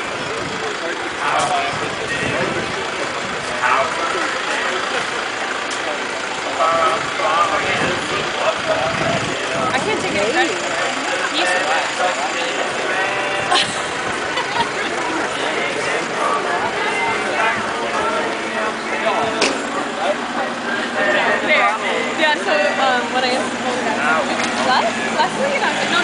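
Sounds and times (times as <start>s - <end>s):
people chattering: 0.0s - 26.0s
steady background noise: 0.0s - 26.0s.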